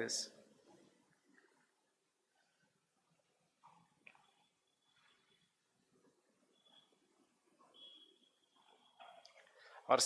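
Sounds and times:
faint thin high squeak: 0:06.5 - 0:09.5.

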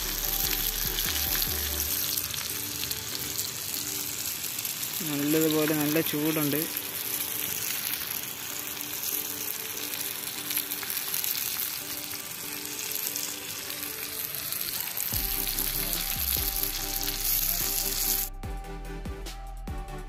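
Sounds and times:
fish sizzling in oil: 0:00.0 - 0:18.3.

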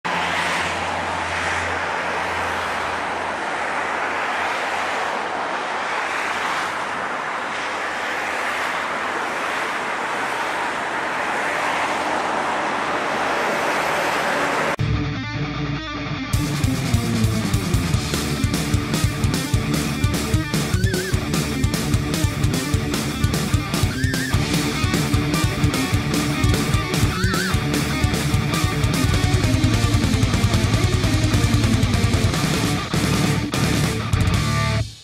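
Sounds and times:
guitar music: 0:14.8 - 0:35.0
turboprop aircraft engines running: 0:16.6 - 0:33.4.

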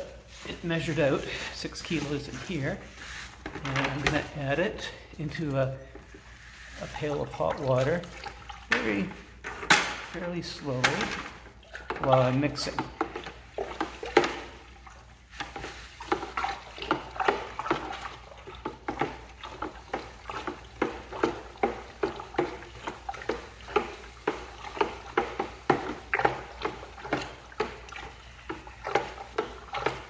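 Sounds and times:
water sloshing in a pail: 0:00.0 - 0:30.0.

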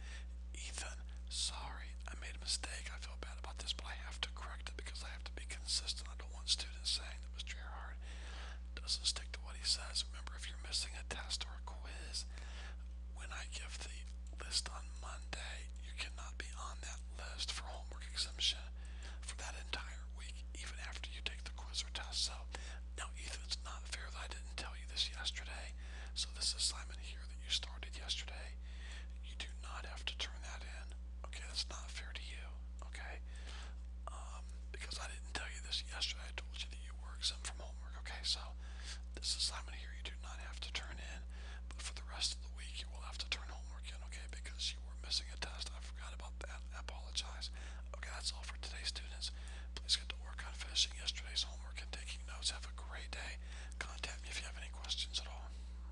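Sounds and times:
person whispering: 0:00.0 - 0:08.0, 0:08.8 - 0:12.4, 0:13.2 - 0:28.6, 0:29.2 - 0:33.3, 0:34.0 - 0:55.6
low electrical hum: 0:00.0 - 0:55.9.

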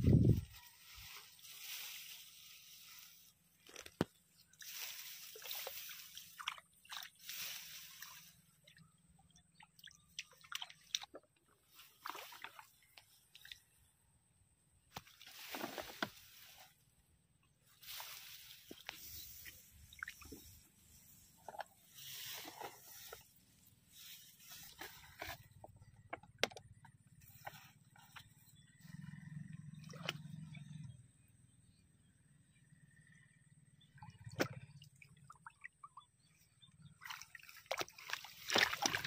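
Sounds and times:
rice plants rustling: 0:00.0 - 0:08.4, 0:14.9 - 0:16.8, 0:17.7 - 0:25.6
muddy water sloshing: 0:00.0 - 0:13.8, 0:17.7 - 0:26.1, 0:33.8 - 0:39.0.

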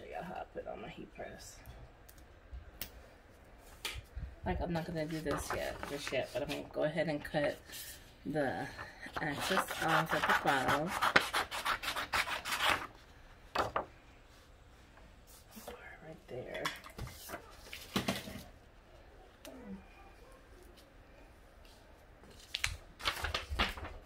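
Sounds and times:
paper rustling: 0:05.0 - 0:06.7, 0:17.0 - 0:18.5, 0:22.2 - 0:24.0.

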